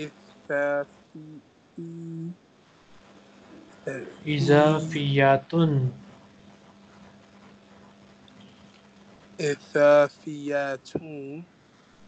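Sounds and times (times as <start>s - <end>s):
person humming: 0.0s - 2.4s, 3.9s - 5.7s, 9.4s - 11.4s.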